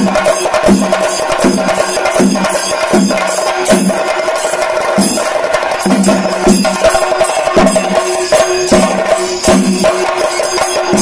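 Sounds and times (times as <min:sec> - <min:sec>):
rapid drum roll with sticks: 0:00.0 - 0:11.0.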